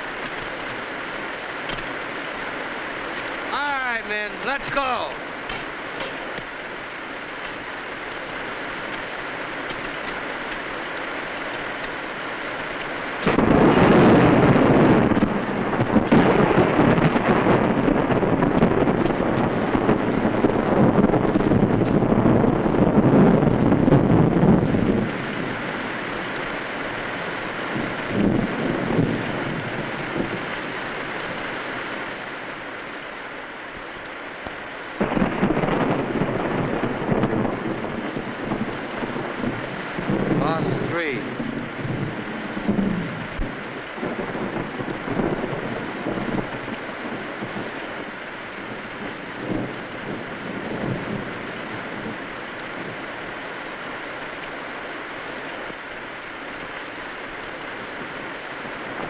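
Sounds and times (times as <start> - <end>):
heavy rain falling: 0.0 - 59.0
rolling thunder rumble: 0.0 - 59.0.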